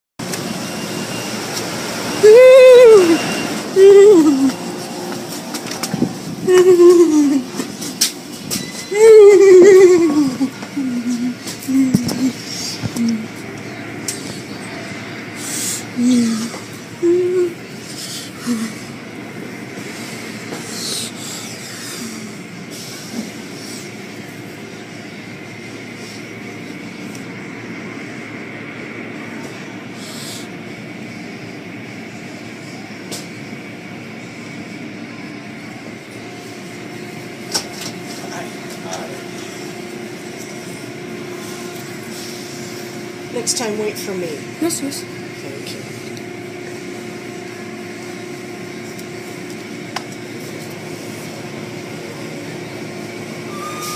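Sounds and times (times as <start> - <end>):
faint constant whine: 0.2 - 53.9
machinery background noise: 0.2 - 53.9
voices: 2.2 - 8.0, 8.8 - 23.0.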